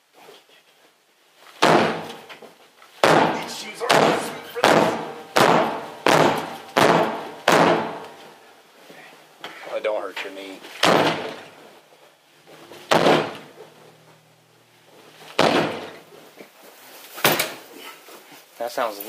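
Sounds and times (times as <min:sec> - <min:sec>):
door being kicked: 0:01.6 - 0:02.3, 0:03.0 - 0:08.2, 0:10.7 - 0:11.6, 0:12.6 - 0:13.9, 0:15.3 - 0:16.1, 0:17.2 - 0:17.6.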